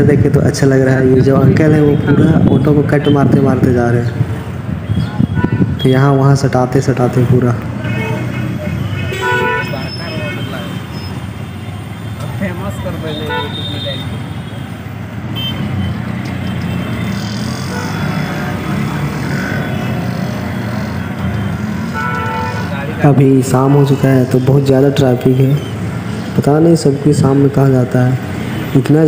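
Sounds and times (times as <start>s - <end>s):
traffic noise: 0.0s - 29.0s
vehicle horns honking: 1.7s - 3.5s, 4.8s - 6.4s, 7.2s - 25.8s
rickshaw engine running: 9.6s - 29.0s.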